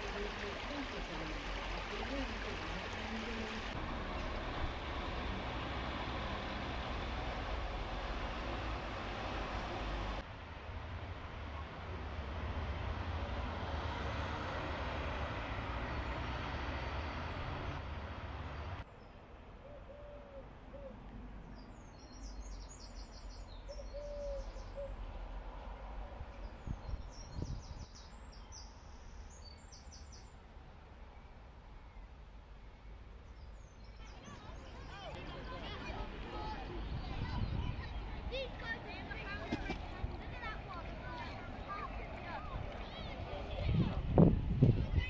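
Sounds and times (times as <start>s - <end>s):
street rumble with hiss: 0.0s - 45.0s
small birds chirping: 21.4s - 25.0s, 26.3s - 30.4s.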